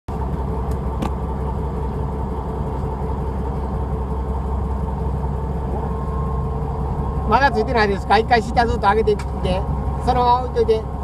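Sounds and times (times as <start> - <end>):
boat engine low drone: 0.1 - 11.0
faint constant hum: 0.1 - 11.0.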